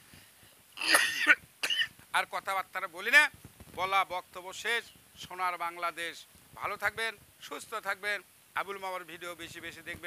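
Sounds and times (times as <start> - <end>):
person coughing: 0.8 - 1.9.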